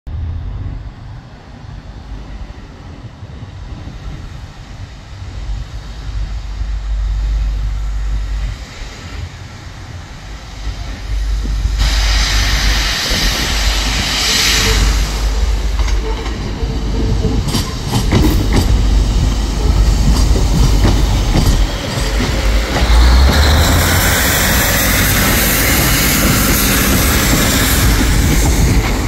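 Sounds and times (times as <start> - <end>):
diesel train rumbling: 0.1 - 29.0.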